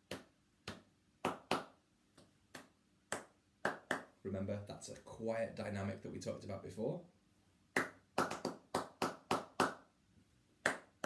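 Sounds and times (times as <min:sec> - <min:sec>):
hand claps in rhythm: 0:00.0 - 0:04.2, 0:07.8 - 0:09.9, 0:10.6 - 0:11.0.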